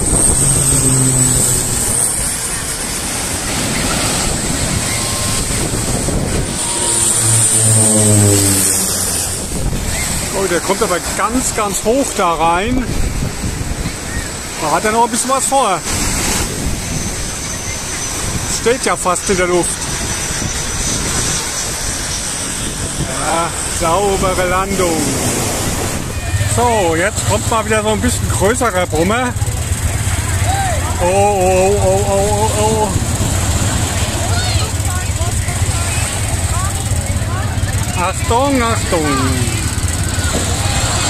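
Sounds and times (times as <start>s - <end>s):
wind on microphone: 0.0s - 14.6s, 15.8s - 27.5s, 28.2s - 41.0s
crowd voices: 0.0s - 41.0s
jet engines roaring: 0.0s - 41.0s
surf: 0.0s - 41.0s.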